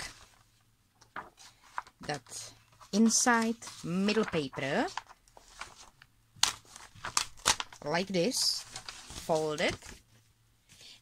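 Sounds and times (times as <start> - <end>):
paper sheet crackling: 0.0 - 10.0.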